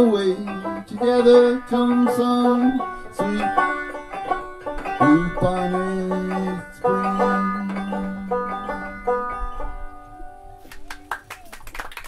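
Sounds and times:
banjo playing: 0.0 - 10.6
hand clapping: 10.6 - 12.0.

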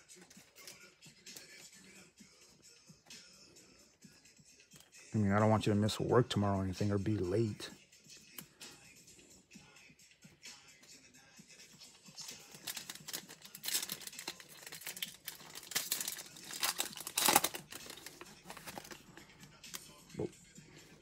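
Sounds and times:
background music: 0.0 - 21.0
foil wrapper tearing and crinkling: 12.2 - 19.1.

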